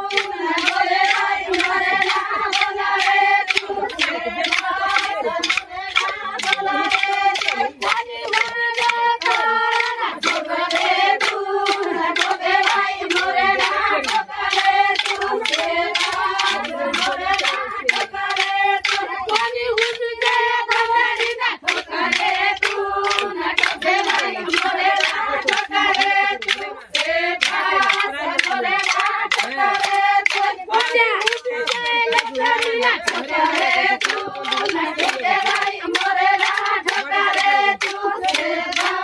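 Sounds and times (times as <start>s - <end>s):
rhythmic hand-clapping: 0.0s - 39.0s
women singing folk song: 0.0s - 39.0s.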